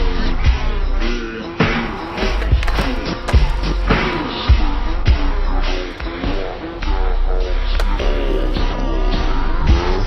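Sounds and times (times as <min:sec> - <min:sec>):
rap backing track: 0:00.0 - 0:10.0
skateboard wheels rolling on concrete: 0:01.1 - 0:06.8
skateboard clacks: 0:01.6 - 0:06.2, 0:07.8 - 0:08.6.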